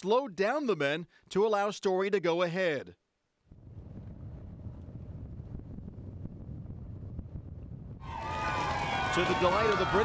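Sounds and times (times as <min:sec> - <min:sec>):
wind buffeting microphone: 0:03.5 - 0:10.0.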